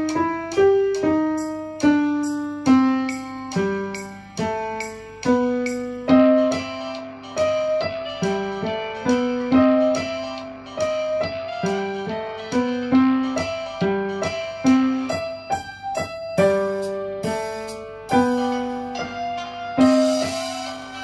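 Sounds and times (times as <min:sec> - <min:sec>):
dixieland piano playing: 0:00.0 - 0:21.0.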